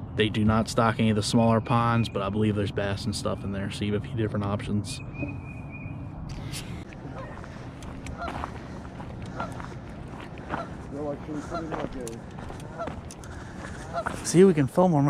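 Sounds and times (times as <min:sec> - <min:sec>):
geese honking: 0:06.8 - 0:15.0.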